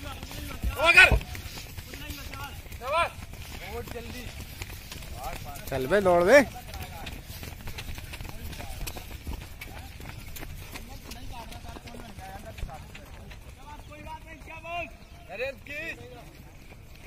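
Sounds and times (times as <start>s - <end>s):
runners' footfalls on dirt: 0.0s - 17.0s
people shouting: 0.6s - 1.4s.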